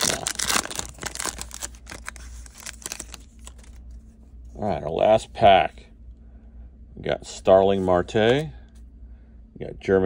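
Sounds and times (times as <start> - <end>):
foil wrapper tearing and crinkling: 0.0 - 3.8.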